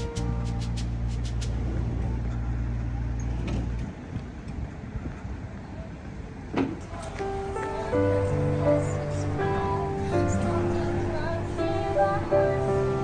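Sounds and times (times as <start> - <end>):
street noise: 0.0 - 13.0
vehicle engine drone: 0.0 - 13.0.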